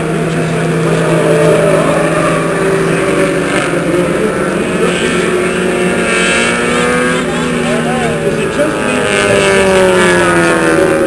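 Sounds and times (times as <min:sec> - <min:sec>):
car engine passing by: 0:00.0 - 0:11.0.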